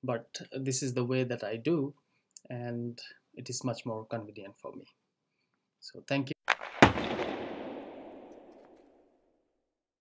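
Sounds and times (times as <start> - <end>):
reverberant impact sound effect: 6.5 - 9.1.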